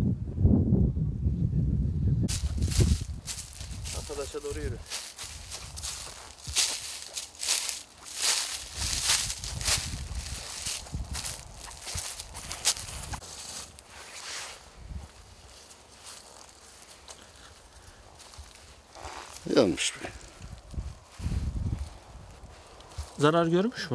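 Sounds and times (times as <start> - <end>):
footsteps on dry leaves: 2.3 - 23.3.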